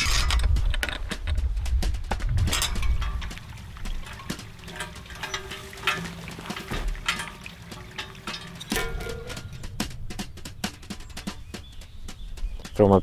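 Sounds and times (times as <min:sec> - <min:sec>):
metal clicks and clinks: 0:02.5 - 0:09.8.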